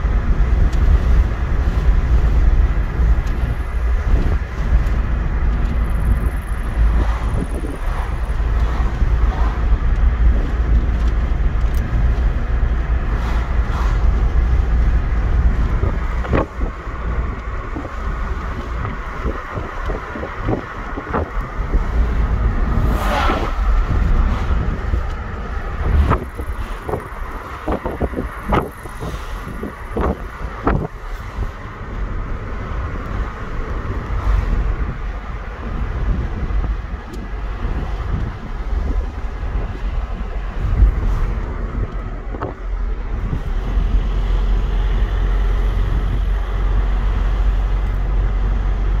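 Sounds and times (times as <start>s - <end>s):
car cabin road rumble: 0.0s - 49.0s.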